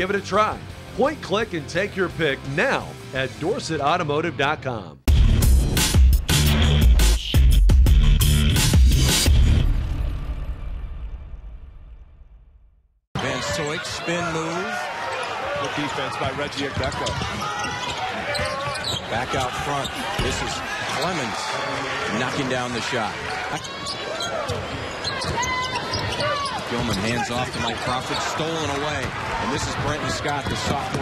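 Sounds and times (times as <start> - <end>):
arena game noise: 13.2 - 31.0.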